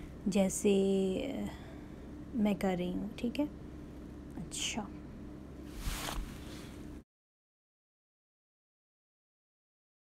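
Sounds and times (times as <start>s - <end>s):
low steady hum: 0.0s - 7.0s
fabric rustling: 5.7s - 6.8s.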